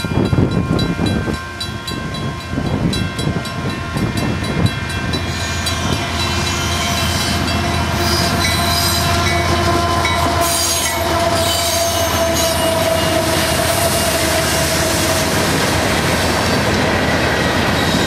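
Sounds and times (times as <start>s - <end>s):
diesel locomotive engines running: 0.0s - 18.0s
train wheels clattering on rails: 0.0s - 18.0s.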